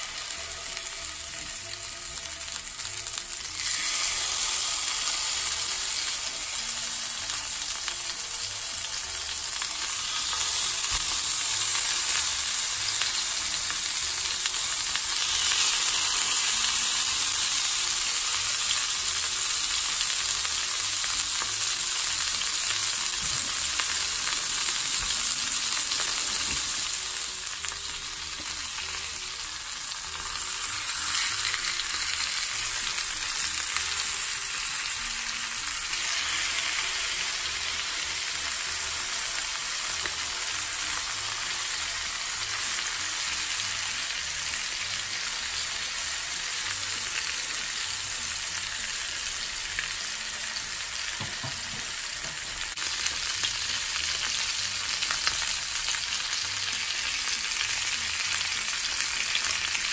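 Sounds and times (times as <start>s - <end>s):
meat sizzling in a skillet: 0.0s - 59.9s.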